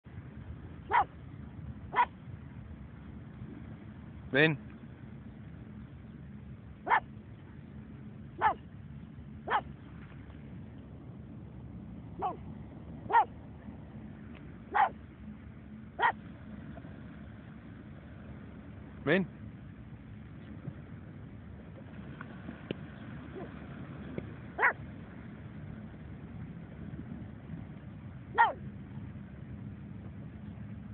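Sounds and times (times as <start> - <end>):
low steady rumble: 0.0 - 30.9
dog barking: 0.9 - 1.1, 1.9 - 2.1, 6.8 - 7.1, 8.4 - 8.6, 9.5 - 9.7, 12.2 - 12.4, 13.1 - 13.3, 14.7 - 15.0, 16.0 - 16.2, 24.6 - 24.8, 28.4 - 28.6.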